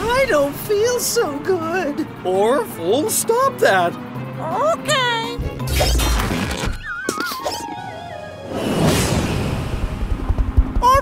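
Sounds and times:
background music: 0.0s - 10.8s
magic whoosh with low rumble: 8.5s - 10.7s.

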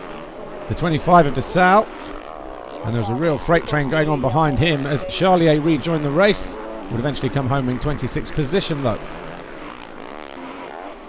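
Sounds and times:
motocross bike engine revving: 0.0s - 11.0s.

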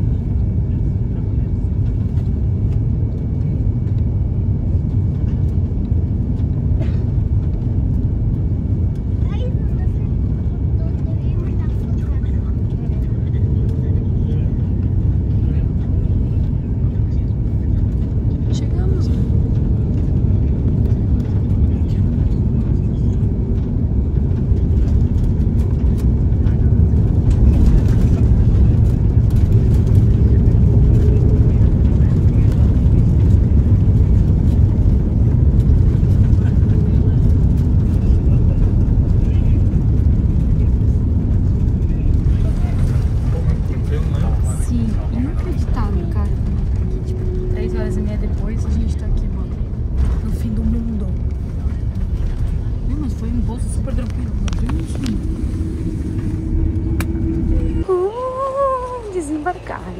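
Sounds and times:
jet cabin engine rumble: 0.0s - 59.9s.

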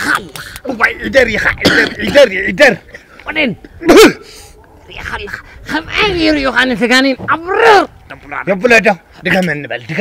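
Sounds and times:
man crying out and wailing: 3.8s - 4.4s.

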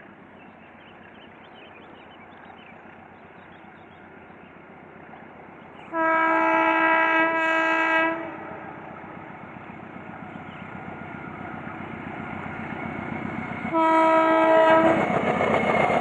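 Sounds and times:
train rumbling: 0.0s - 16.0s
locomotive horn blast: 5.9s - 8.7s, 13.7s - 15.1s.

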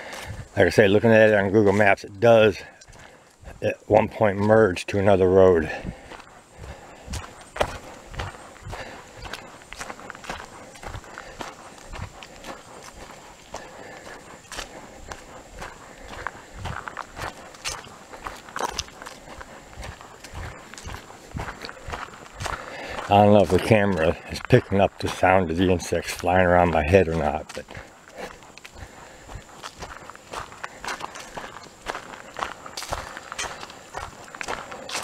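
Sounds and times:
footsteps on dirt trail: 0.0s - 35.0s.

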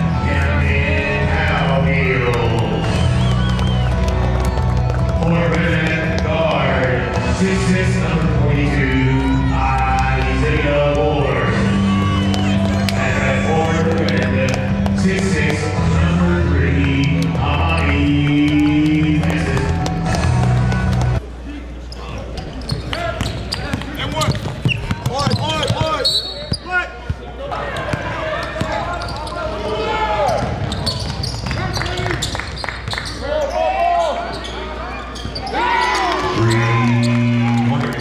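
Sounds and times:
sneakers squeaking: 11.5s - 13.2s, 21.8s - 38.0s
players calling out: 33.0s - 38.0s.

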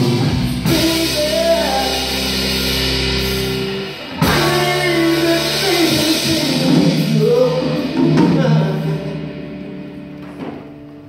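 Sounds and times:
electric guitar and bass chord: 0.0s - 11.0s.

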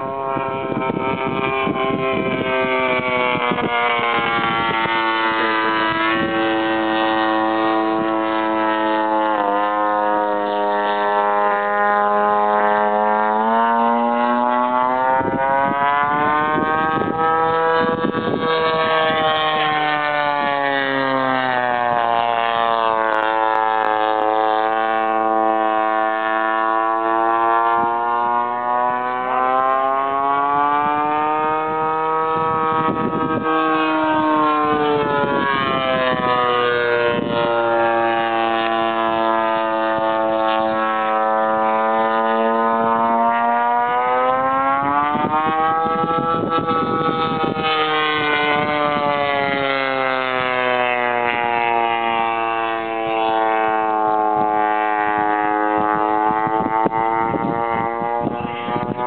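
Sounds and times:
model airplane motor and propeller drone: 0.0s - 59.0s.

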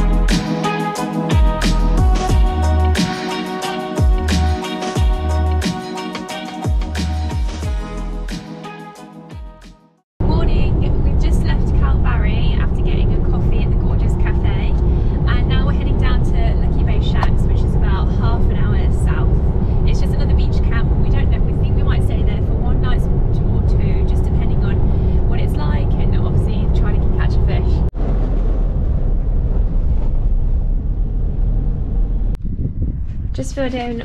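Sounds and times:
engine and road rumble: 0.0s - 3.0s, 10.2s - 34.0s
woman talking: 10.2s - 27.9s, 33.4s - 34.0s.

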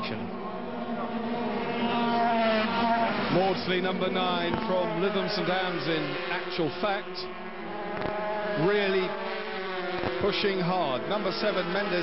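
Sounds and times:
racing motorcycles engines: 0.0s - 12.0s.

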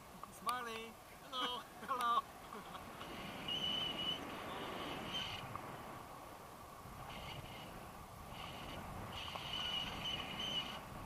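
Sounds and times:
wind rushing over microphone: 2.2s - 11.0s.

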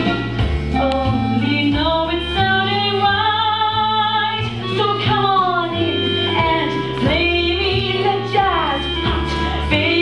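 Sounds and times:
band accompaniment: 0.0s - 10.0s
woman singing: 0.7s - 10.0s.

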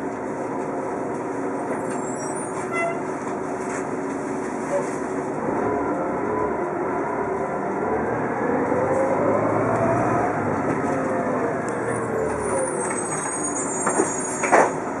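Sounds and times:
bus engine whine: 0.0s - 15.0s
faint high squeal: 1.9s - 3.0s, 12.0s - 14.6s.

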